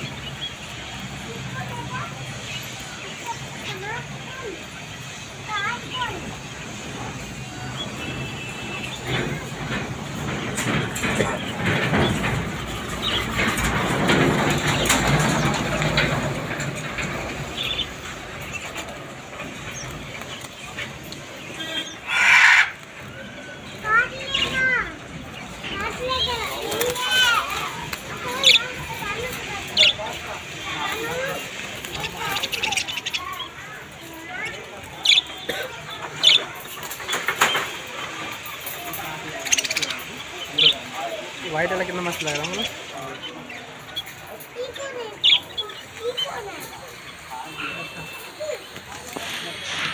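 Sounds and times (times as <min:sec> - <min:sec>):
small birds chirping: 0:00.0 - 0:49.9
budgerigars chirping: 0:19.7 - 0:22.8
loud harsh bird squawk: 0:21.6 - 0:22.8.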